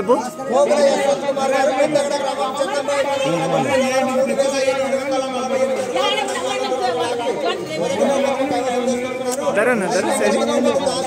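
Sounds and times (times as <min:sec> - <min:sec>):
men talking over each other: 0:00.0 - 0:11.0.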